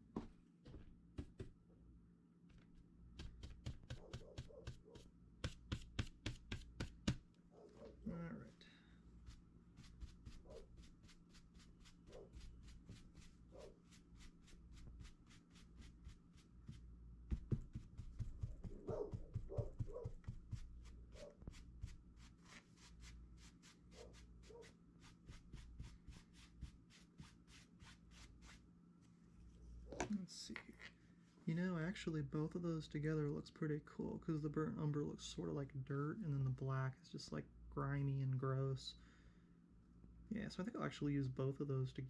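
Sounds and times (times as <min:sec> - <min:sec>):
paintbrush scrubbing canvas: 0:03.2 - 0:07.2, 0:09.2 - 0:28.6.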